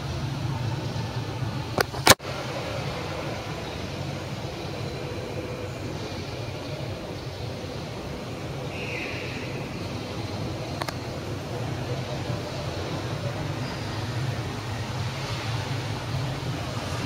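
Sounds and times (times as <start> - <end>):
sharp click: 10.8 - 11.0.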